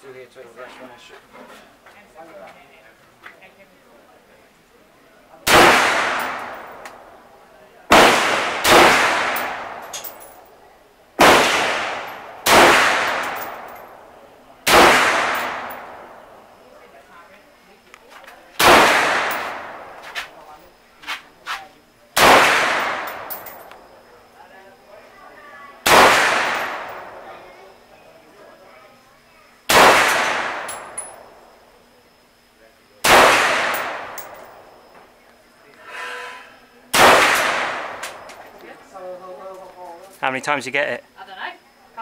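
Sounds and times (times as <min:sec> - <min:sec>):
rifle shots echoing: 0:05.4 - 0:07.1, 0:07.9 - 0:10.4, 0:11.2 - 0:16.5, 0:18.6 - 0:20.0, 0:22.2 - 0:23.8, 0:25.8 - 0:27.3, 0:29.7 - 0:31.3, 0:33.0 - 0:34.6, 0:36.9 - 0:38.3
faint short gunshot cracks: 0:29.7 - 0:30.8, 0:36.9 - 0:38.2.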